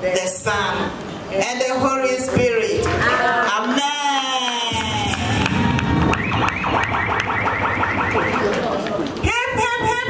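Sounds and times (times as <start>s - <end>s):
rapid high warbling: 4.7s - 9.2s.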